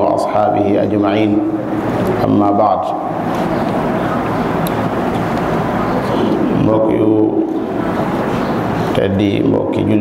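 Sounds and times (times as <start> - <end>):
rushing background noise: 0.0 - 10.0.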